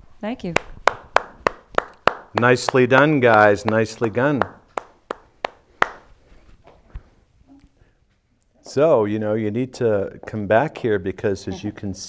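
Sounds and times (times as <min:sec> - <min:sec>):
hands clapping: 0:00.6 - 0:06.1.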